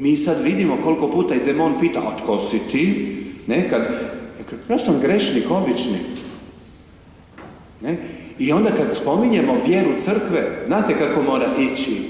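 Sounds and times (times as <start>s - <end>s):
man speaking in reverberant church: 0.0s - 6.6s, 7.7s - 12.0s.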